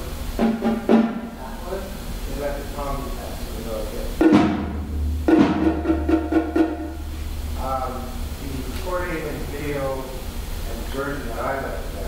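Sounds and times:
drum strokes with sticks: 0.0s - 10.8s
low ringing drum boom: 4.2s - 8.6s.

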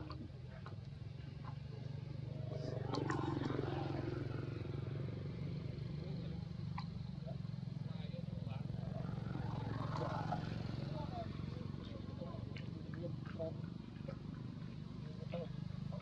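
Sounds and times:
low motor hum: 0.0s - 16.0s
voices: 0.0s - 16.0s.

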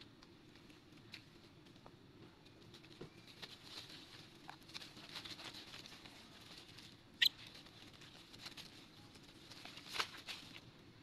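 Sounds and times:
young monkey squeaking: 7.2s - 7.4s.

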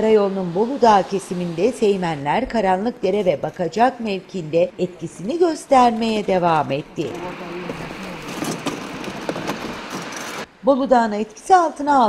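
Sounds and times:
tyres hissing on slushy road: 0.0s - 2.9s, 7.1s - 10.5s
vehicles passing: 0.0s - 10.6s.

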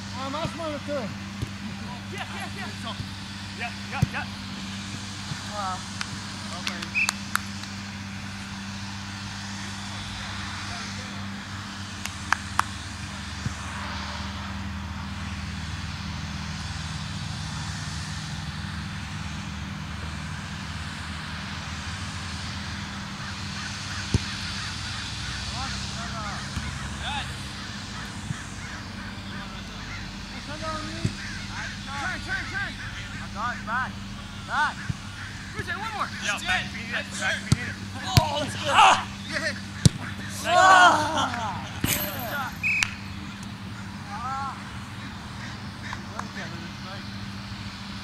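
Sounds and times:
distant players shouting: 0.1s - 7.5s, 22.6s - 46.8s
steady low rumble: 1.0s - 45.8s
ball being kicked: 24.1s - 24.4s, 26.5s - 26.8s, 39.8s - 40.2s.

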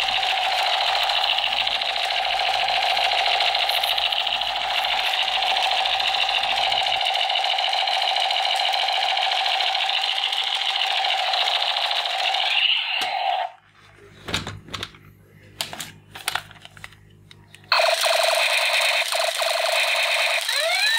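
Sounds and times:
toy gun electronic rapid-fire: 0.0s - 13.6s, 17.7s - 20.9s.

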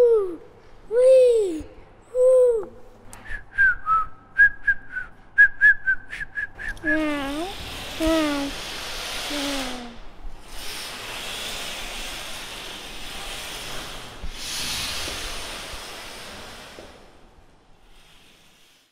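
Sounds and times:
child making vocal sound effects: 0.0s - 2.8s, 6.8s - 8.6s, 9.2s - 10.1s
long breathy hiss: 7.3s - 18.9s.

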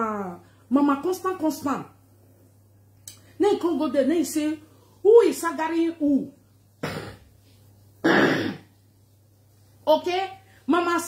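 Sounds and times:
woman coughing: 6.8s - 7.2s, 8.0s - 8.7s.

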